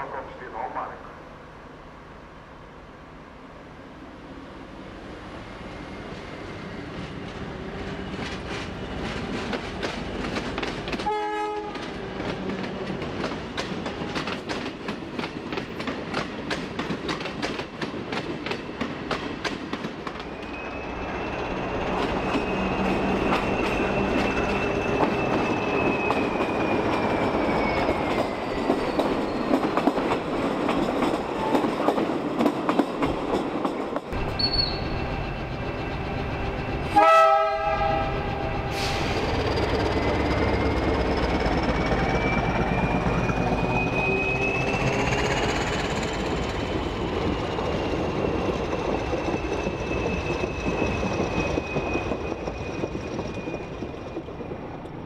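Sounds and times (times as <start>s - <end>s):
diesel train running: 4.0s - 55.0s
train wheels clicking on rails: 6.1s - 55.0s
train horn blasts: 11.0s - 11.9s, 36.9s - 38.6s
high wheel squeal: 20.3s - 29.7s, 34.2s - 54.8s.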